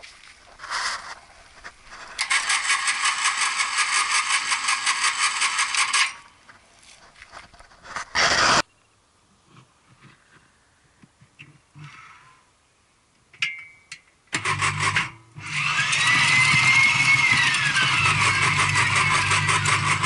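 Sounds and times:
auger motor whirring: 14.4s - 20.0s.

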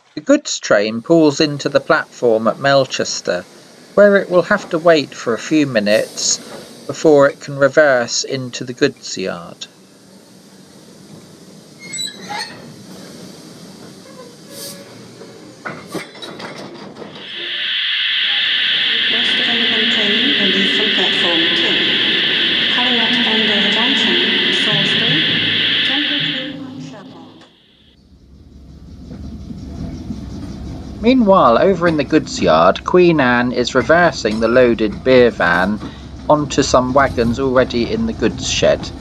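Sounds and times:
steam hissing: 1.0s - 16.4s, 17.1s - 27.9s
voices murmuring: 17.2s - 27.6s
low rumble: 17.2s - 27.9s.

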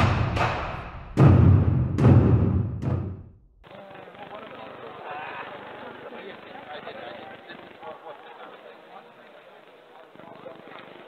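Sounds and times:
booming drum hit: 0.0s - 3.4s
sports hall murmur: 3.6s - 11.0s.

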